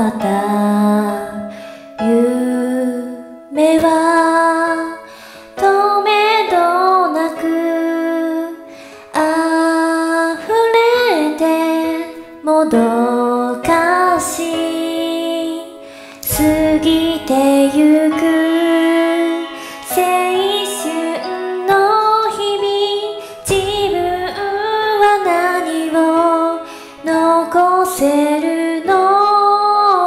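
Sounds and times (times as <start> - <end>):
musical accompaniment: 0.0 - 30.0
woman singing: 0.0 - 30.0.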